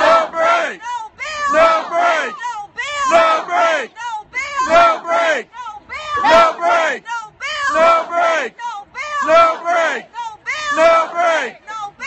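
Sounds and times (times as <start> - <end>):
crowd chanting: 0.0 - 12.0
woman shouting protest chant: 0.0 - 12.0.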